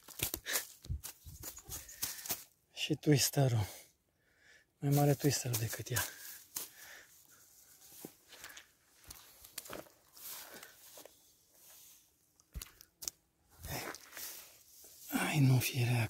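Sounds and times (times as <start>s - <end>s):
grass rustling and crunching: 0.0s - 2.6s, 4.8s - 15.6s.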